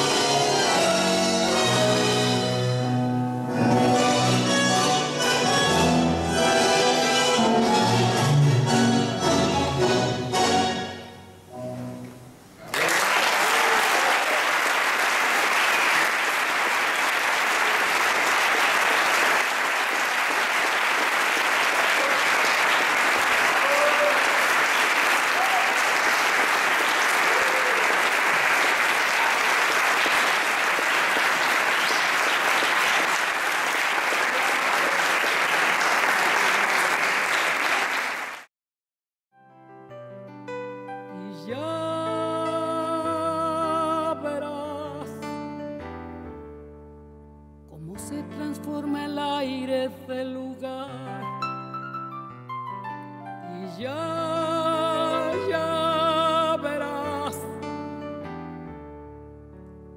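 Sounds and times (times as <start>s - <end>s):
faint tango music: 0.0s - 12.7s, 39.7s - 59.9s
audience applauding: 12.6s - 38.5s.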